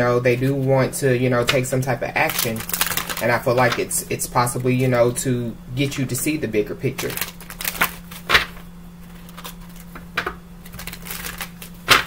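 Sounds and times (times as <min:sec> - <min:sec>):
steady low hum: 0:00.0 - 0:12.0
cards shuffled snapping: 0:07.0 - 0:12.0.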